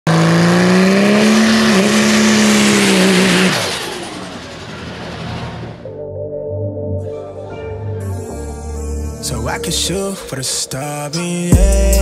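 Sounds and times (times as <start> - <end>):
diesel truck engine revving: 0.0 - 5.9
truck roaring away: 0.0 - 6.0.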